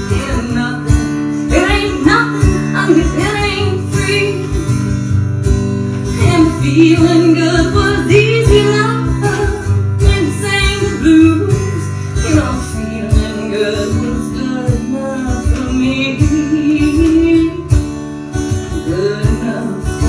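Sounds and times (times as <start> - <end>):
woman singing: 0.0 - 5.0, 5.9 - 20.0
strummed acoustic guitar: 0.0 - 20.0.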